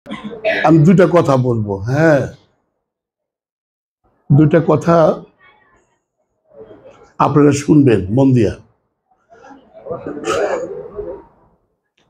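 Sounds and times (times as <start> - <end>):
man clearing his throat: 10.1 - 10.9.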